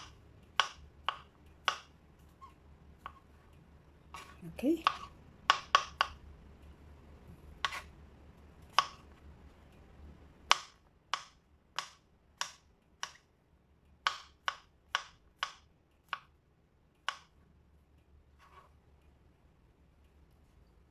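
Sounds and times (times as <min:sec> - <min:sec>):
knife chopping on plastic board: 0:00.0 - 0:01.9, 0:03.0 - 0:03.2, 0:04.1 - 0:06.2, 0:07.6 - 0:07.9, 0:08.7 - 0:09.1, 0:10.4 - 0:13.3, 0:14.0 - 0:16.3, 0:17.0 - 0:17.4.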